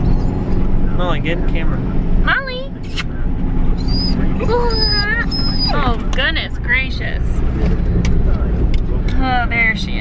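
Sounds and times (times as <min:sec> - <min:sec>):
dog whining: 0:00.0 - 0:00.7, 0:03.7 - 0:06.1
car cabin rumble: 0:00.0 - 0:10.0.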